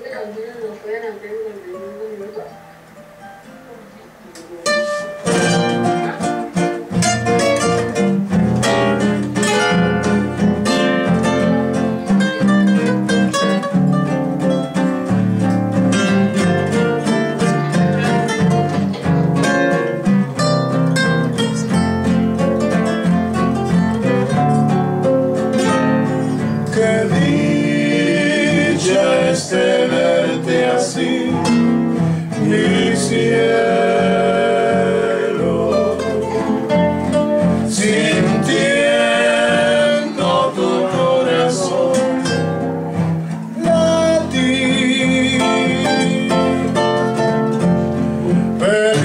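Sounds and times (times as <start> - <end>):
acoustic guitars playing: 0.0 - 49.0.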